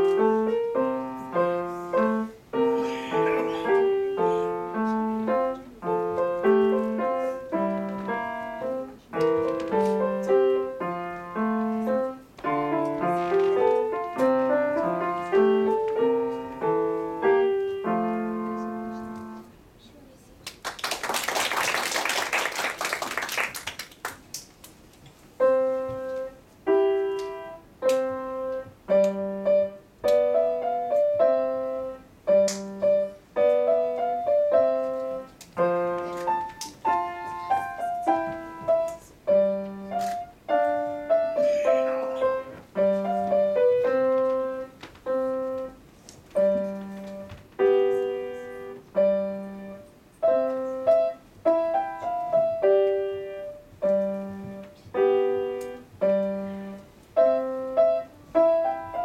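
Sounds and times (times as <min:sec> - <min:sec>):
solo grand piano: 0:00.0 - 0:19.6, 0:25.3 - 0:59.0
audience applause: 0:20.5 - 0:24.3.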